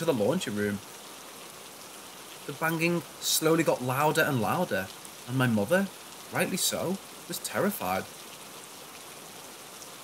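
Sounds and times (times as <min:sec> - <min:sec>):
rain-like hiss: 0:00.0 - 0:10.0.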